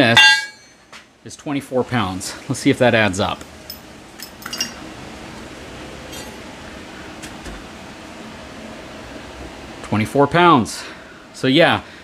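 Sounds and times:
short metallic ring: 0.0 - 0.8
steel pieces clinking: 0.0 - 0.8.

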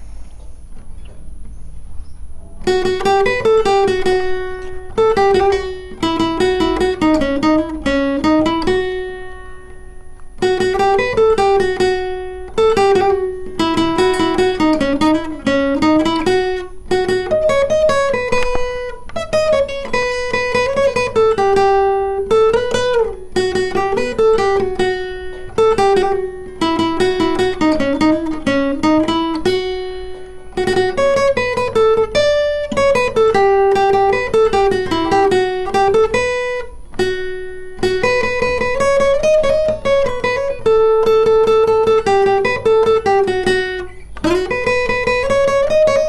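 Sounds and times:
acoustic guitar picked melody: 0.0 - 46.0.

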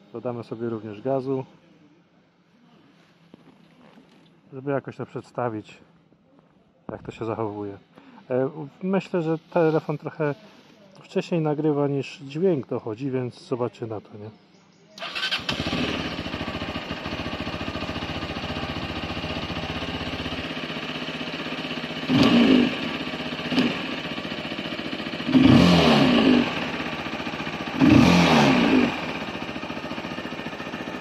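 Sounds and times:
electric starter: 15.0 - 16.0
motorcycle engine idling: 15.0 - 31.0
motorcycle engine revving: 15.0 - 31.0.

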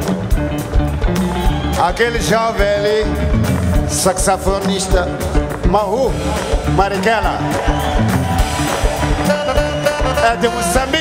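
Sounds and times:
live band playing a groove: 0.0 - 11.0.

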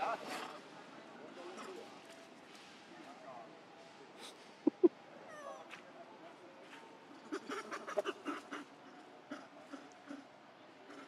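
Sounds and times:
young macaques whimpering: 7.3 - 8.7.

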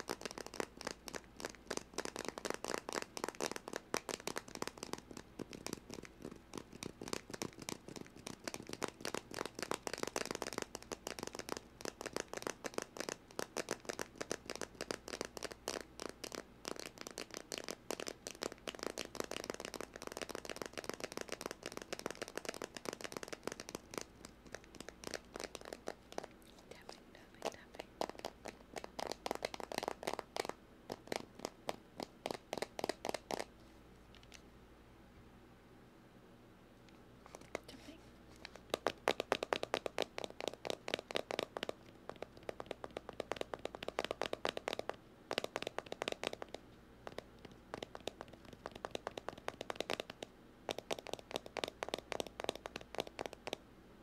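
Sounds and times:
tapping and scratching on microphone: 0.0 - 34.4, 37.2 - 53.6.

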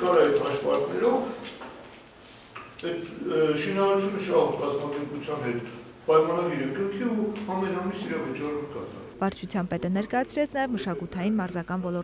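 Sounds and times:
man speaking: 0.0 - 1.4, 2.8 - 9.2.

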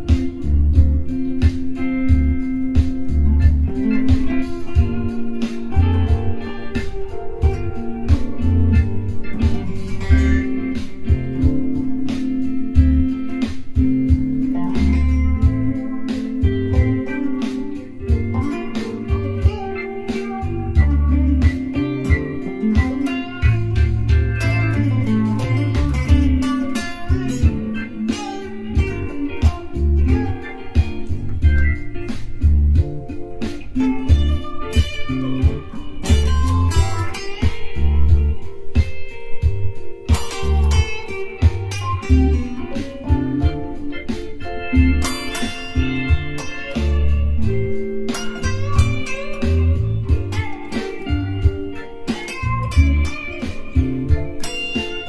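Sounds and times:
electric guitar improvising: 0.0 - 55.0.

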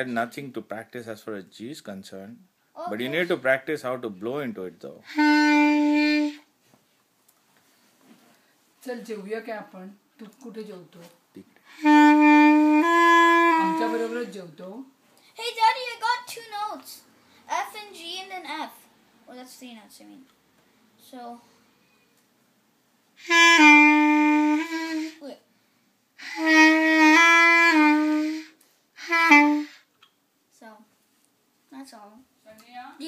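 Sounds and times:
clarinet holding a steady note: 5.1 - 6.5, 11.7 - 14.3, 23.2 - 25.2, 26.2 - 29.8.

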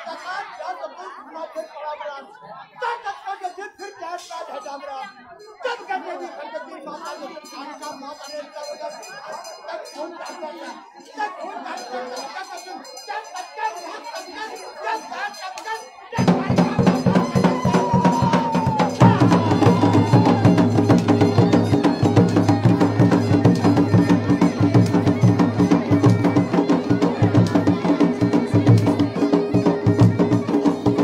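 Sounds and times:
folk music with drums: 16.1 - 31.0.

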